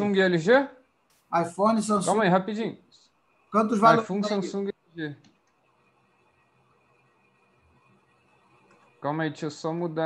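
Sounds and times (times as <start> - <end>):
faint steady hum: 0.0 - 10.0
computer mouse clicks: 5.2 - 5.9, 7.6 - 9.0.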